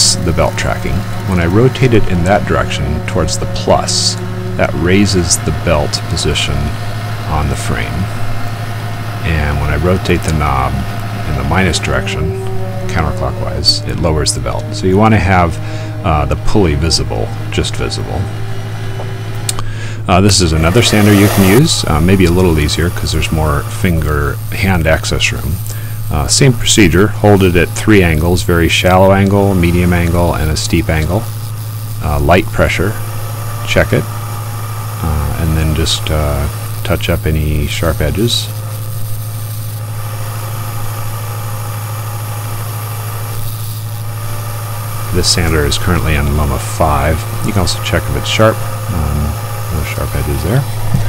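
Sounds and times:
sander motor humming: 0.0 - 51.0.

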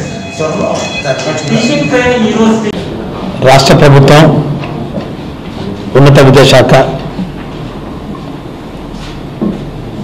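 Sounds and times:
room noise with low hum: 0.0 - 10.0.

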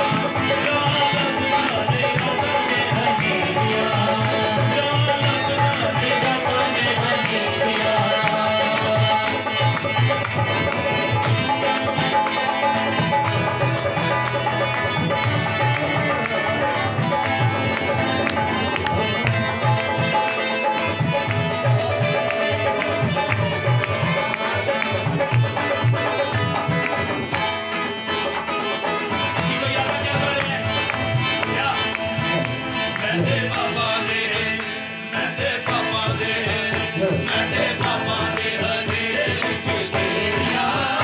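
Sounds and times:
fast percussive beat: 0.0 - 41.0
harmonium chords: 0.0 - 41.0.

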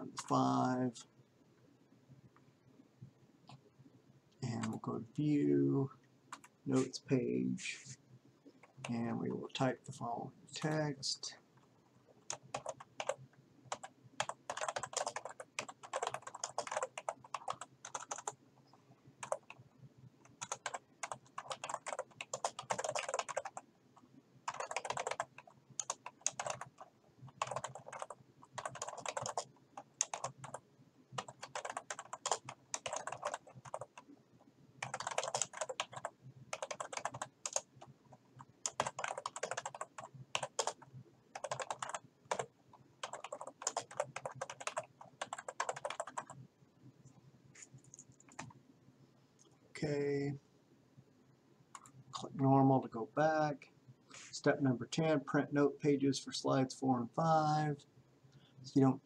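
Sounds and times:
typing on computer keyboard: 12.3 - 18.4, 19.2 - 19.6, 20.2 - 23.6, 24.5 - 30.6, 31.2 - 34.1, 34.8 - 46.4, 47.8 - 48.6.

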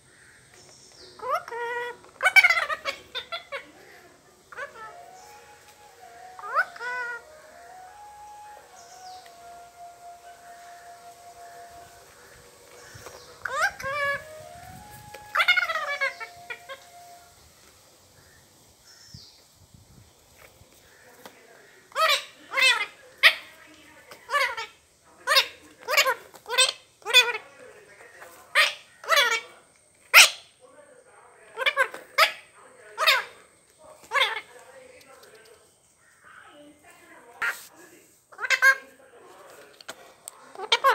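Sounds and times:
faint steady tones: 0.0 - 19.6
parakeet harsh calls: 1.1 - 17.2, 21.6 - 30.6, 31.5 - 34.6, 38.3 - 38.9, 40.5 - 40.9.

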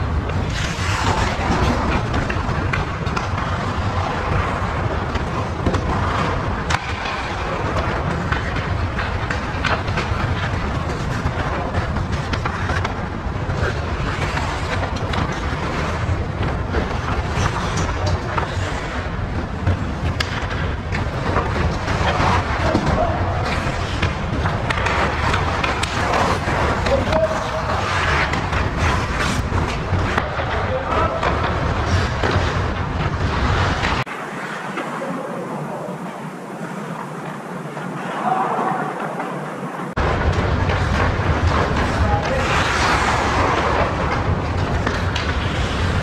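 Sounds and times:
skate blades scraping ice: 0.0 - 46.0
stick hitting puck: 0.3 - 13.0, 19.6 - 32.6.

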